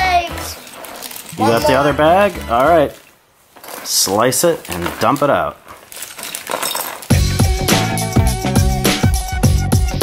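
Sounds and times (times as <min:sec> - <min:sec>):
plastic toy parts clinking: 0:00.0 - 0:07.3
background music with steady beat: 0:07.1 - 0:10.0.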